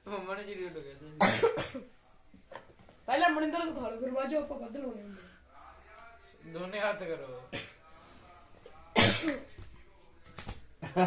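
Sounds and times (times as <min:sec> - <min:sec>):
person coughing: 0:01.2 - 0:01.9.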